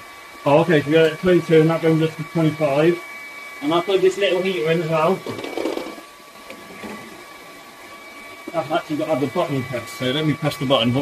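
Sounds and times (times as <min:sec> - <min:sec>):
hair dryers and fan heaters whooshing: 0:00.0 - 0:11.0
thin high whine: 0:00.0 - 0:11.0.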